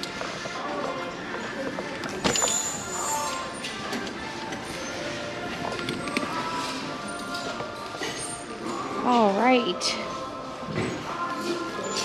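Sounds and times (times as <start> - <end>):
chatter of shoppers: 0.0 - 12.0
store background music: 0.0 - 12.0.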